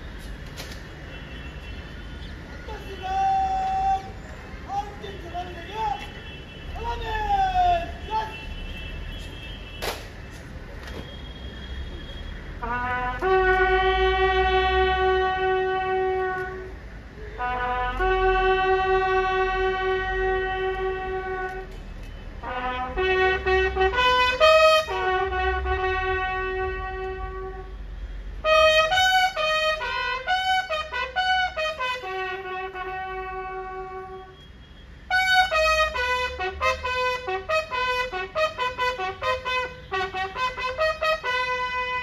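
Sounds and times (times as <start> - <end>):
bugle call: 12.6 - 16.7, 17.4 - 21.7, 22.4 - 27.7, 28.4 - 34.5, 35.1 - 42.0
bugle low note: 12.6 - 16.7.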